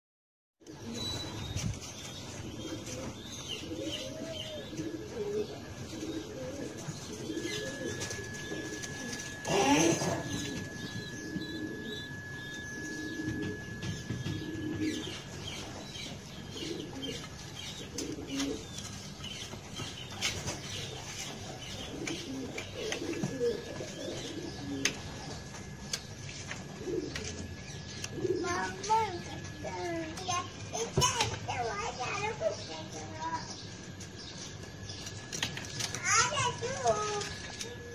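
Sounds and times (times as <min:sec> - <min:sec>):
pigeons cooing: 0:00.6 - 0:32.7
child's voice: 0:28.2 - 0:33.6, 0:36.0 - 0:37.4.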